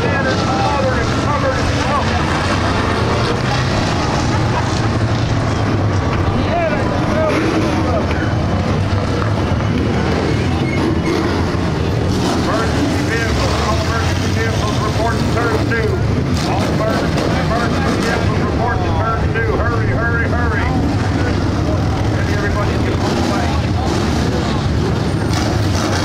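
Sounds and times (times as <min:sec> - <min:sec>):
race car engines: 0:00.0 - 0:26.0.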